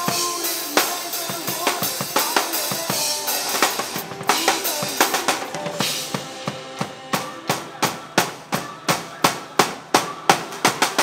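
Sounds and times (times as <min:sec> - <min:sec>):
drum kit hits: 0:00.0 - 0:11.0.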